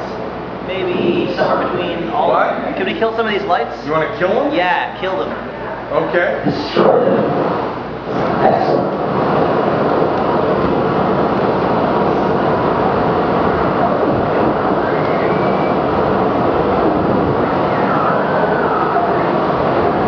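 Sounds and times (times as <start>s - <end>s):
electronic noise wall: 0.0s - 20.0s.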